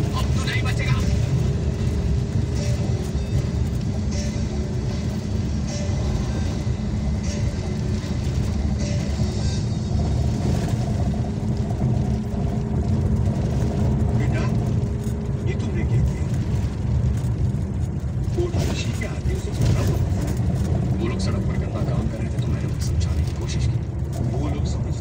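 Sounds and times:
faint music: 0.0 - 25.0
road vehicle rumbling: 0.0 - 25.0.

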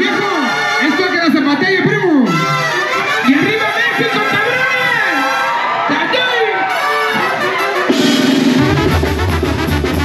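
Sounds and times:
brass band playing: 0.0 - 10.0
drum kit beat: 6.7 - 10.0
low bass notes: 8.6 - 10.0.

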